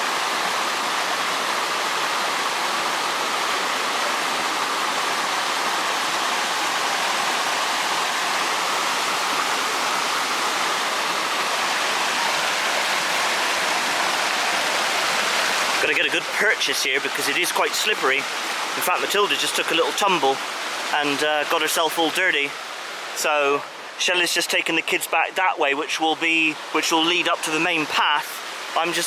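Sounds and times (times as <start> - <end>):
stream rushing over rocks: 0.0 - 29.0.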